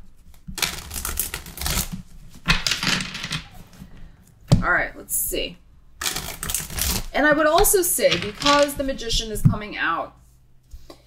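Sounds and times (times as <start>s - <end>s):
cards riffle shuffling: 0.2s - 4.4s, 8.0s - 8.8s.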